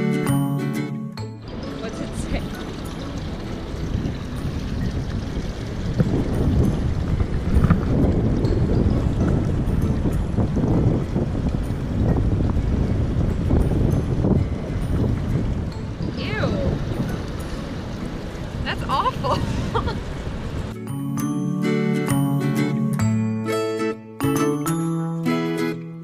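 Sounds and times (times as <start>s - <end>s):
wind buffeting microphone: 1.4s - 20.8s
faint surf: 11.3s - 20.8s.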